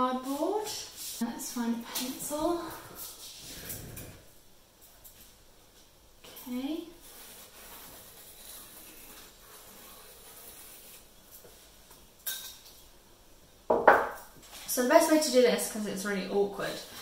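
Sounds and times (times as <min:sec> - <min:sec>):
pencil scratching on card: 0:07.0 - 0:11.1.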